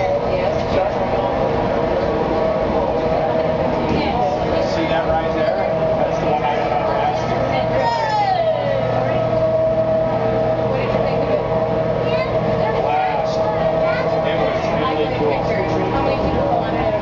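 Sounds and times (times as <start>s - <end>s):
people's voices: 0.0s - 17.0s
short falling whine: 0.0s - 17.0s
steady mechanical hum: 0.0s - 17.0s.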